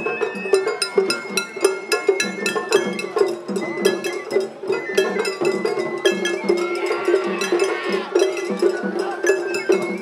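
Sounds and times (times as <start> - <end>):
taiko drums beating: 0.0 - 10.0.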